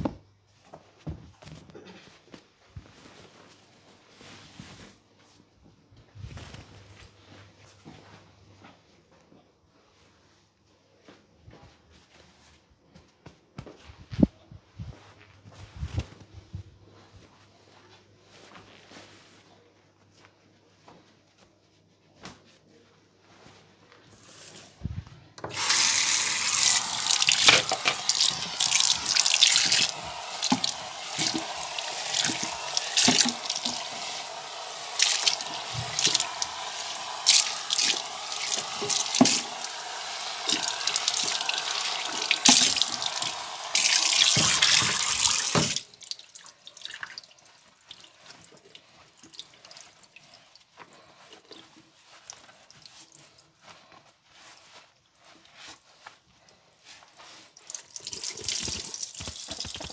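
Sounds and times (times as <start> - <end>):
tap water running into sink: 25.4 - 48.0, 57.6 - 59.9
faint water drips: 26.4 - 53.4, 57.5 - 59.9.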